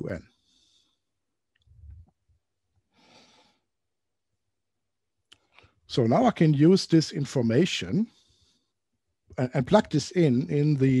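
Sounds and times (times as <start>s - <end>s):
faint breath: 2.9s - 3.7s.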